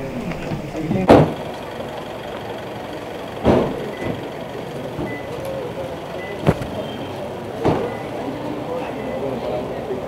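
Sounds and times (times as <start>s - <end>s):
bustling outdoor background: 0.0s - 10.0s
car door shutting: 6.3s - 7.0s.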